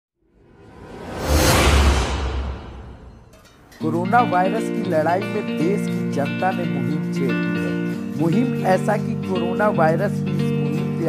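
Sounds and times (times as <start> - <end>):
whoosh sound effect: 0.4 - 3.5
deep rumble: 0.6 - 3.3.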